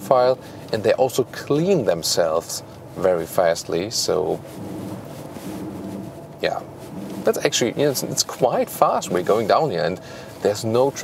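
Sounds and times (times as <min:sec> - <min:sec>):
diesel engine droning: 0:00.0 - 0:11.0.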